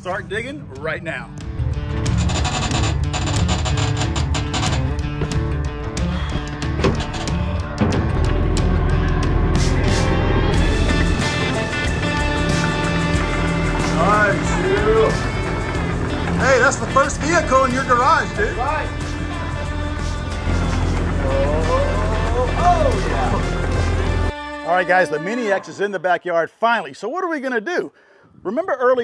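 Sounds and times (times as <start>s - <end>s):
music with steady beat: 4.3s - 24.7s.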